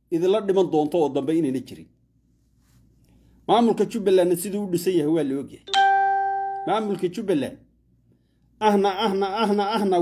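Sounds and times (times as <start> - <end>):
man speaking: 3.5 - 5.8, 6.4 - 7.7, 8.6 - 10.0
bell-like chime: 5.7 - 7.0.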